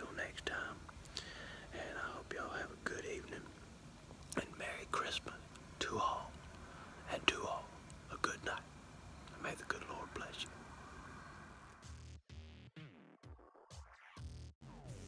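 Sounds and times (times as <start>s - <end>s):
man whispering: 0.0s - 0.9s, 1.6s - 3.6s, 4.3s - 10.6s.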